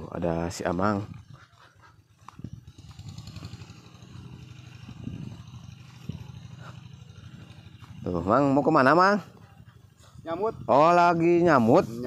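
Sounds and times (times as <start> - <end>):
small engine running: 0.2 - 12.0.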